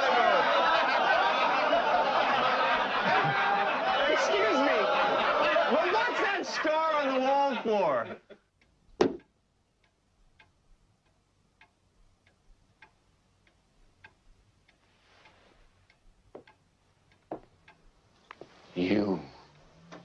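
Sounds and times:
clock ticking: 4.0s - 20.0s
dart hitting dartboard: 9.0s - 9.2s
loud knocks: 9.0s - 9.3s.

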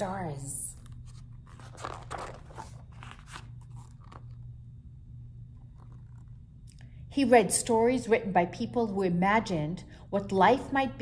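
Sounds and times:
steady low hum: 0.0s - 11.0s
book pages turning: 0.7s - 4.5s, 5.6s - 6.4s.

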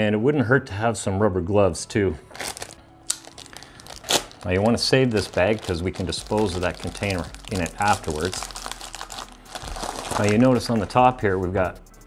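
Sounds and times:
plastic bag crinkling: 2.3s - 10.8s.

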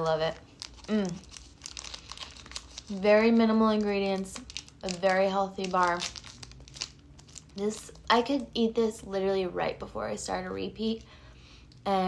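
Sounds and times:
wrapper crinkling: 0.0s - 8.4s.

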